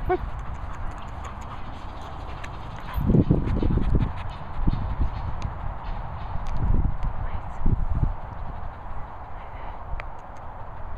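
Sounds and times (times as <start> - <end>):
small dog panting: 0.0 - 6.4, 7.9 - 10.9
wind on microphone: 0.0 - 10.9.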